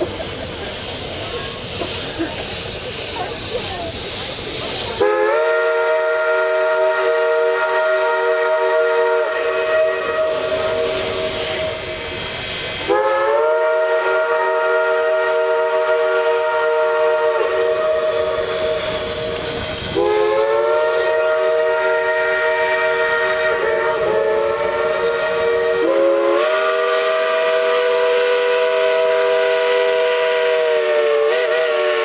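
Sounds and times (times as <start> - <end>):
steam locomotive whistle chord: 0.0 - 3.4, 4.0 - 32.0.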